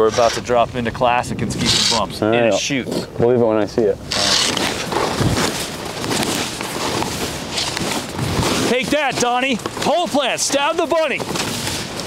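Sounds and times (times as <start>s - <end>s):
skis scraping over snow: 4.1s - 12.0s.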